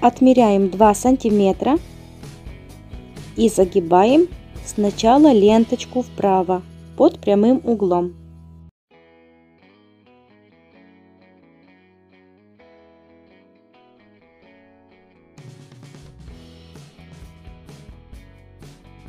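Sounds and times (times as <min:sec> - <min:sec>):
background music with steady beat: 0:00.0 - 0:08.4, 0:15.4 - 0:19.0.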